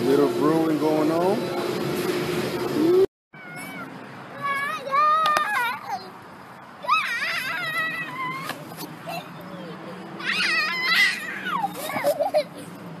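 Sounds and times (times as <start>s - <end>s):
toddler vocalizing: 3.4s - 4.6s.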